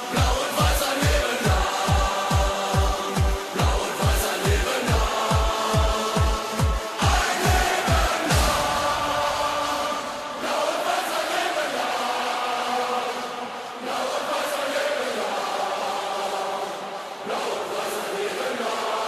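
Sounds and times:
electronic dance beat: 0.0 - 10.3
crowd chanting and singing: 0.0 - 19.0.

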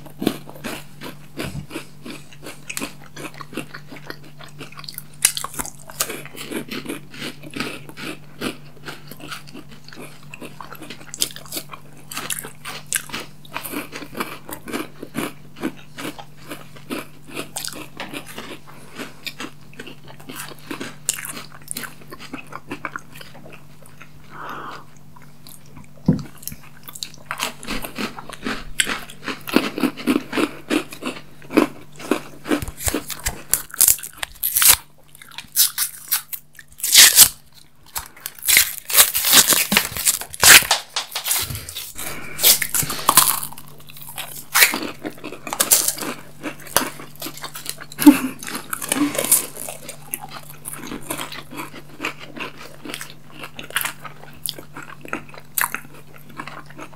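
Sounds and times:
crunching and chewing candy: 0.0 - 56.9
faint steady hum: 0.0 - 56.9
candy wrappers crinkling and tearing: 32.2 - 56.9.

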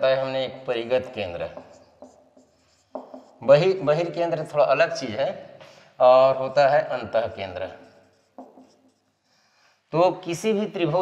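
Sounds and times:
man talking: 0.0 - 1.7, 3.4 - 7.9, 9.9 - 11.0
marker pen scratching on whiteboard: 1.1 - 4.2, 6.3 - 9.6.

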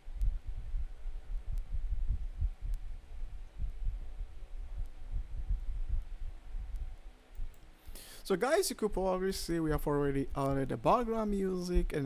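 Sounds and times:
low bass-heavy music pulses: 0.0 - 7.1
faint hum: 0.0 - 12.0.

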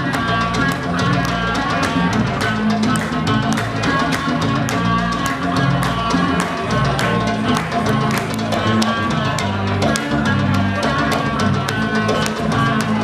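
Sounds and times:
drum kit steady beat: 0.0 - 13.0.

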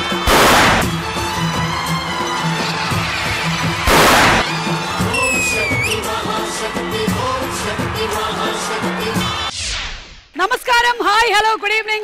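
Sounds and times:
gas jets hissing blast: 0.3 - 0.9, 3.9 - 4.5.

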